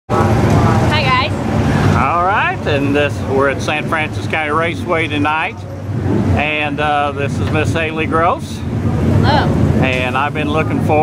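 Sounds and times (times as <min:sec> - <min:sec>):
race car engines rumbling: 0:00.1 - 0:11.0.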